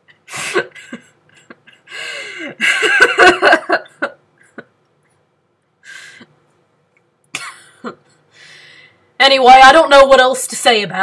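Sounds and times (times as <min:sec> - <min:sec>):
woman breathing: 0:01.7 - 0:02.6, 0:05.8 - 0:06.4, 0:08.2 - 0:09.2
woman coughing: 0:07.4 - 0:08.0.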